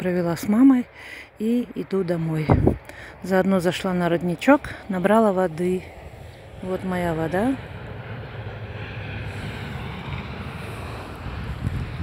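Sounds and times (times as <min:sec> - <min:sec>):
wind buffeting microphone: 0:01.5 - 0:12.0.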